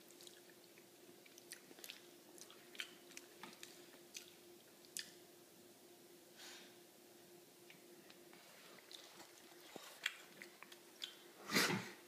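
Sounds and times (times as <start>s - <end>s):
baby chewing food: 0.0s - 5.2s, 7.6s - 11.2s
faint steady hum: 0.0s - 12.0s.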